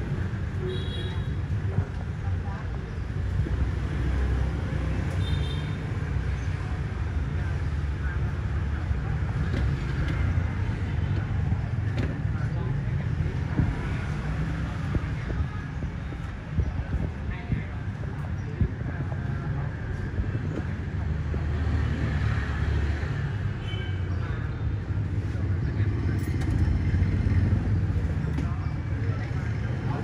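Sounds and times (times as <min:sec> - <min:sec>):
traffic rumble: 0:00.0 - 0:30.0.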